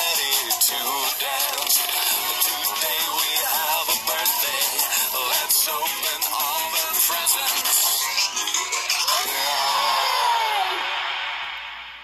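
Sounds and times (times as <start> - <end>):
cartoon music through speaker: 0.0 - 11.0.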